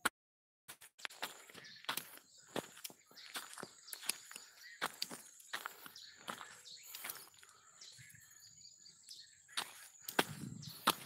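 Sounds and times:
footsteps in forest undergrowth: 0.7s - 11.0s.

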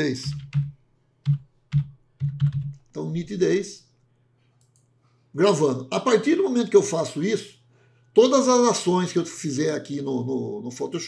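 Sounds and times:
computer keyboard typing: 0.0s - 2.9s.

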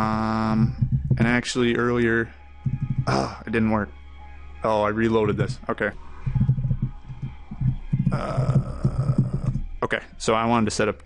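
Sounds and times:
computer keyboard typing: 6.3s - 9.6s.

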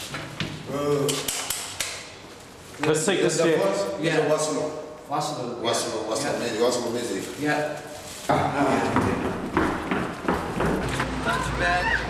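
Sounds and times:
sharp clicks in a hallway: 0.0s - 3.0s.

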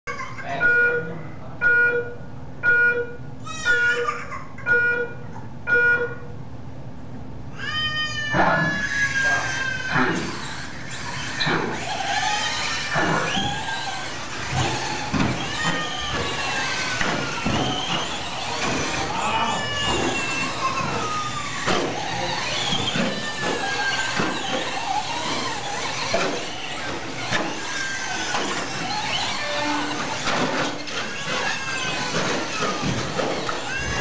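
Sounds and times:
short electronic beeps: 0.6s - 3.8s, 4.7s - 6.3s
rc truck motors whining: 7.6s - 34.0s.

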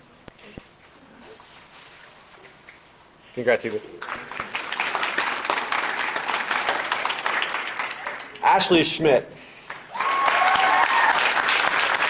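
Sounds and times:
audience applauding: 4.0s - 8.8s, 9.7s - 12.0s.

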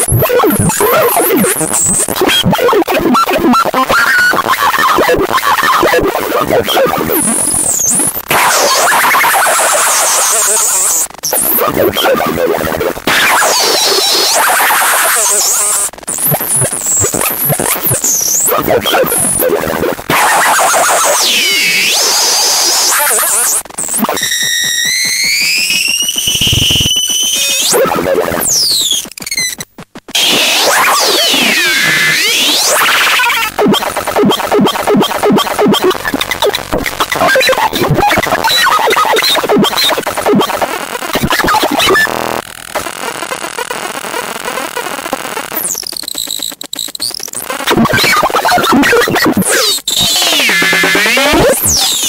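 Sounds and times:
glitchy electronic warbling tones: 0.0s - 52.0s.

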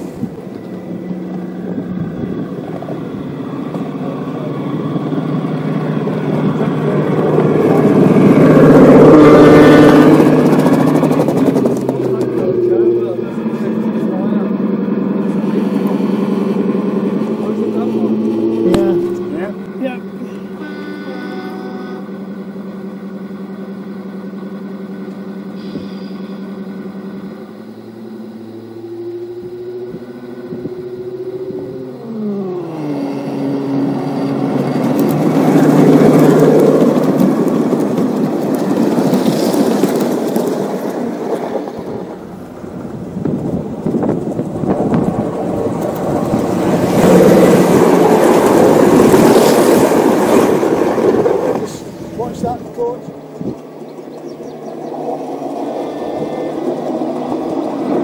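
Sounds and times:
model diesel locomotive engine: 0.0s - 58.0s
model tank engine running: 0.0s - 58.0s.

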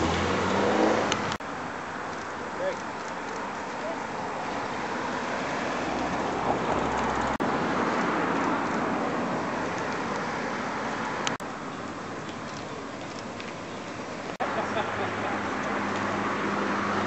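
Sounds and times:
road traffic noise: 0.0s - 17.0s.

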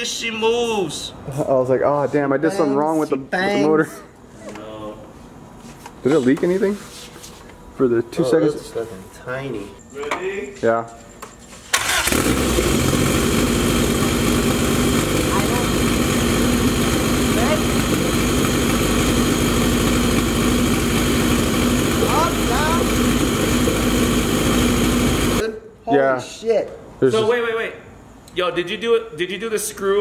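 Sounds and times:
car engine starting and idling: 11.7s - 25.4s.

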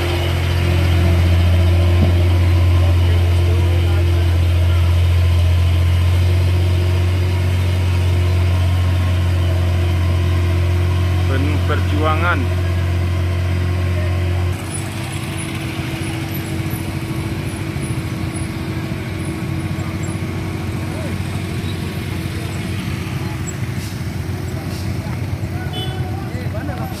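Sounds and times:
voices: 0.0s - 10.6s, 11.2s - 27.0s
motorcycle engines: 0.0s - 27.0s
truck engine idling: 0.0s - 27.0s
people talking: 2.0s - 5.5s, 11.3s - 13.0s, 18.6s - 27.0s.

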